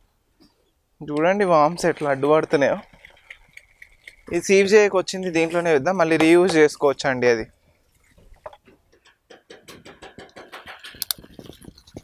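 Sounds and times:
person talking: 1.0s - 2.8s, 4.3s - 7.5s.

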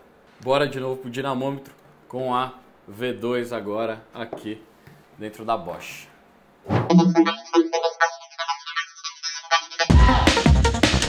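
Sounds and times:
electronic music with synth and beat: 6.8s - 11.0s.

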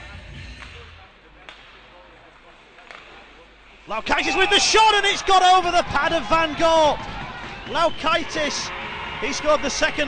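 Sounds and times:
hockey stick hitting puck: 2.8s - 3.4s.

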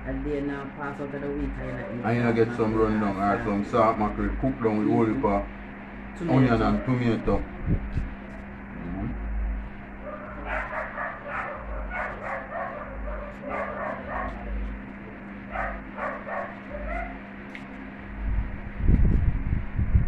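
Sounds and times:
low electrical hum: 0.0s - 20.0s
dog whining and yipping: 10.1s - 14.5s, 15.6s - 17.2s.

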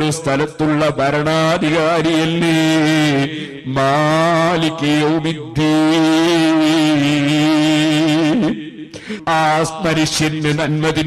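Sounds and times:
man chanting a long note: 0.0s - 8.8s.

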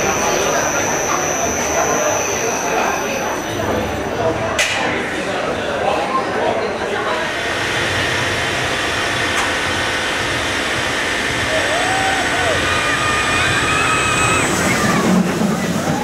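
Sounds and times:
roller coaster rumble: 6.5s - 16.0s.

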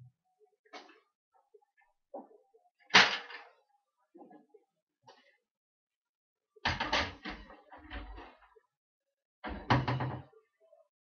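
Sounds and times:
knocks and clattering thumps: 9.4s - 10.4s.

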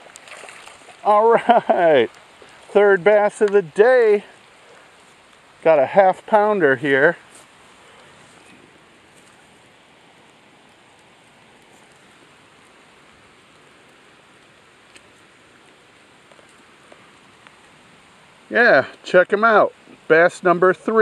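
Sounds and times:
outdoor background hiss: 0.0s - 21.0s.

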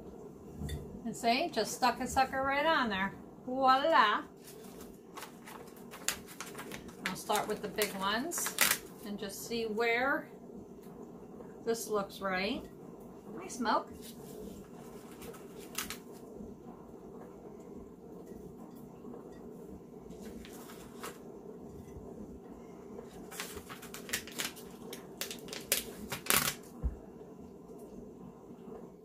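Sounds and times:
faint steady hum: 0.0s - 29.0s
stickers crinkling and rustling: 4.4s - 9.1s, 14.0s - 16.2s, 20.2s - 21.2s, 23.0s - 26.7s.

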